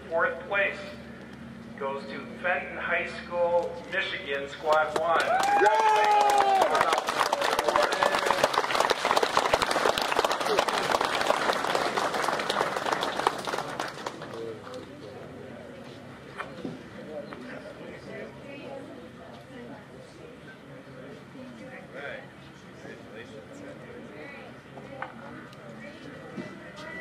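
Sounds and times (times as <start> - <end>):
crowd applauding: 4.7 - 14.8
faint murmuring voices: 10.3 - 27.0.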